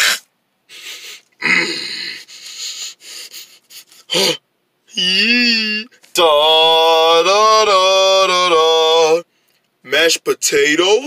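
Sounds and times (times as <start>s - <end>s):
person sniffing through nose: 0.0s - 1.2s.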